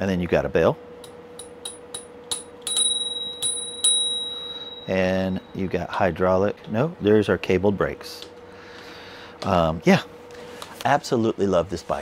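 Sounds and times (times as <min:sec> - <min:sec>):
bicycle bell ringing: 0:01.0 - 0:05.7.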